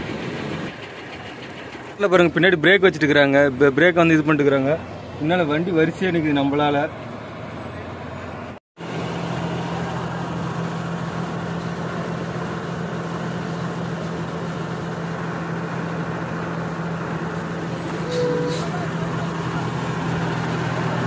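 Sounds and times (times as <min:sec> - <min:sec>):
diesel engines idling: 0:00.0 - 0:21.0.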